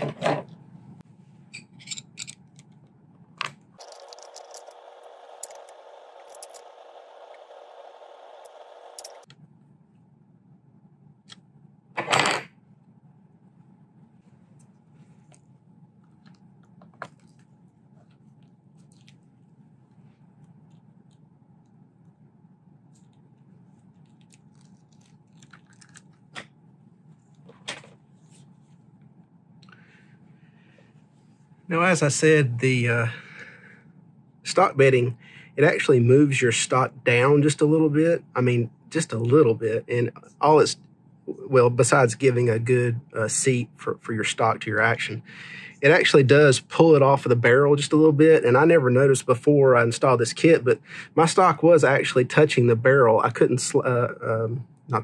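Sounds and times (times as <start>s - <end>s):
faint hum: 0.0s - 55.0s
steady hiss: 3.8s - 9.3s.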